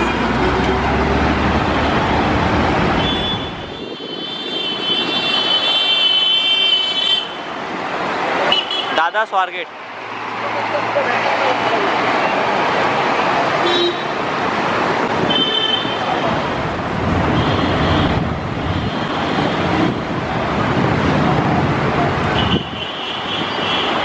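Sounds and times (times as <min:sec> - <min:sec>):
heavy road traffic: 0:00.0 - 0:24.0.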